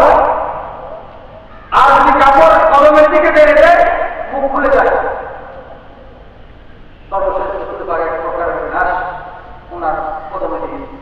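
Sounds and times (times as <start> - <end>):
man speaking loudly: 0.0 - 0.7, 1.7 - 5.4, 7.1 - 11.0.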